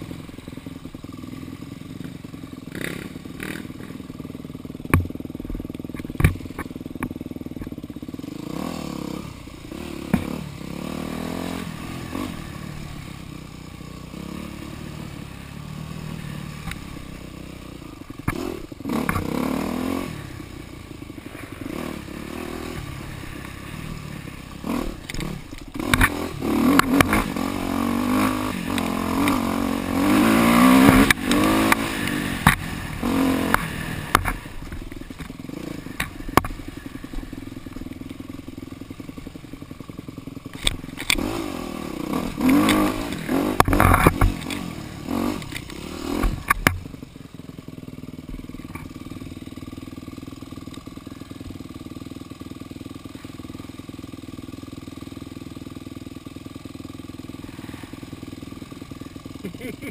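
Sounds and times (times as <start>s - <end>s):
dirt bike engine revving: 0.0s - 53.2s, 53.8s - 59.9s.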